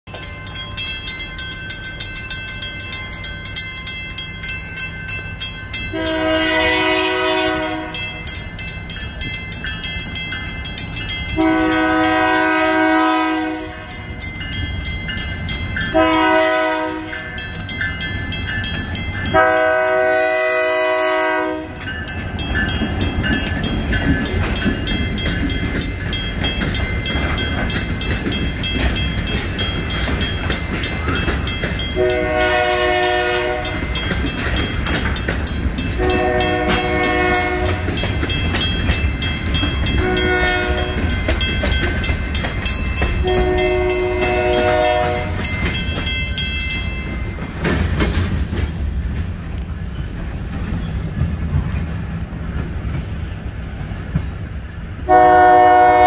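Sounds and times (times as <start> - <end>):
crossing bell ringing: 0.0 - 49.2
freight train rumble and wheel clatter: 0.1 - 56.0
locomotive horn blasts: 5.9 - 8.1, 11.4 - 13.9, 15.9 - 17.2, 19.3 - 21.8, 32.0 - 33.8, 36.0 - 38.0, 40.0 - 41.1, 43.2 - 45.5, 55.1 - 56.0.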